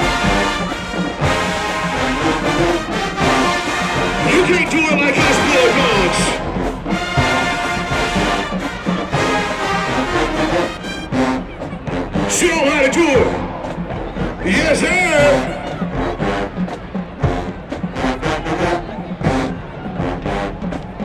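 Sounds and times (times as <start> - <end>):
brass instruments playing melody: 0.0 - 20.7
steady drum beat: 0.0 - 21.0.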